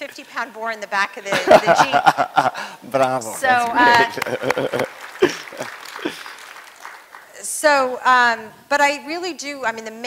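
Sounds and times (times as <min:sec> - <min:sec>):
audience laughter: 0:01.3 - 0:02.6, 0:04.0 - 0:06.4
scattered applause: 0:03.6 - 0:07.6.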